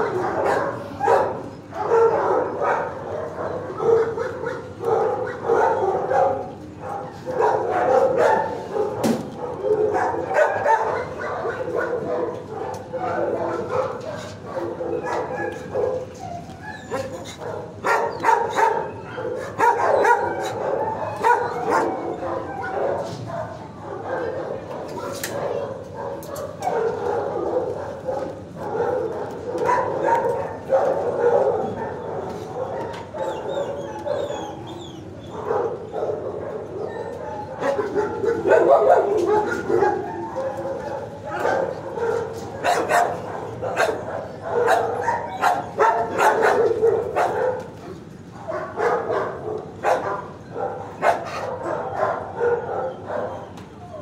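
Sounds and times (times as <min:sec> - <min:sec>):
dogs barking: 0:00.0 - 0:54.0
dogs yipping: 0:00.0 - 0:54.0.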